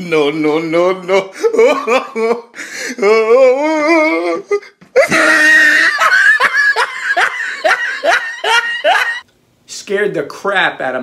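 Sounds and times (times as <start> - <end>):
man laughing hard: 1.2 - 9.2.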